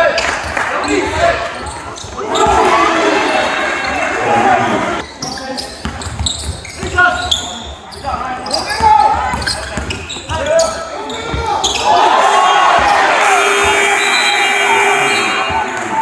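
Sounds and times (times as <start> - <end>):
echoing voices calling out: 0.0 - 5.2, 10.4 - 16.0.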